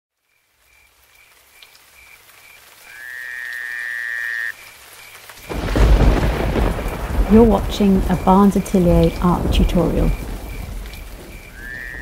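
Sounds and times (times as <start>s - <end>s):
thunder rumble: 5.4s - 12.0s.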